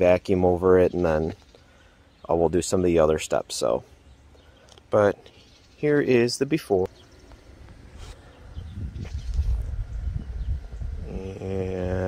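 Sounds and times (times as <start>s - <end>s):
wind buffeting microphone: 8.0s - 12.0s.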